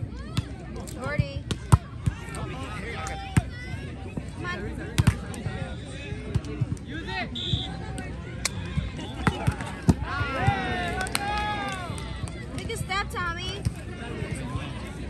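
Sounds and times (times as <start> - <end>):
players shouting: 1.2 - 6.3, 6.9 - 15.0.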